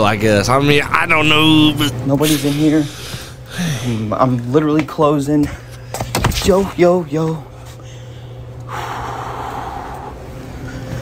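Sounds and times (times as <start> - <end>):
low steady hum: 0.0 - 11.0
person exhaling breathily: 2.3 - 4.1.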